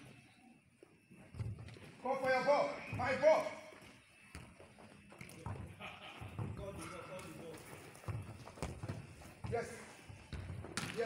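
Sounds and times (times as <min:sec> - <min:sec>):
distant players' voices: 0:00.0 - 0:11.0
ball being kicked: 0:08.1 - 0:11.0.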